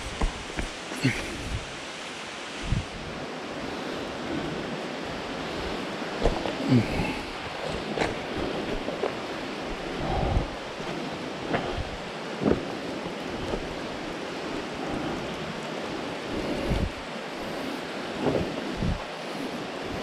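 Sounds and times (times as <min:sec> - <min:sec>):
footsteps on loose rocks: 0:00.0 - 0:01.7, 0:06.1 - 0:14.7
water flowing: 0:00.0 - 0:20.0.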